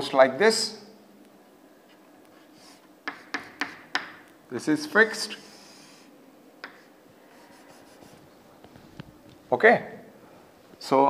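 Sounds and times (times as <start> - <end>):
chalk scratching on chalkboard: 2.3 - 4.0, 5.2 - 6.1, 6.7 - 8.3.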